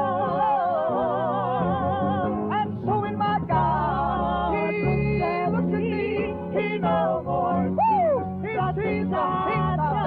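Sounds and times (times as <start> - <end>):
steady bass notes: 0.0 - 10.0.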